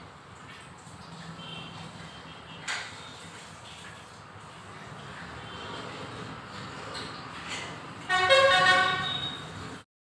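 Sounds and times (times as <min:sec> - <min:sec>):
long steady horn-like tone: 0:08.1 - 0:09.4.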